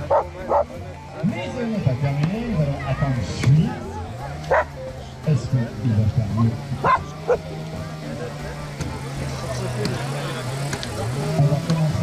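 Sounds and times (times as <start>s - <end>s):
people talking: 0.0s - 12.0s
chainsaw cutting wood: 6.5s - 12.0s.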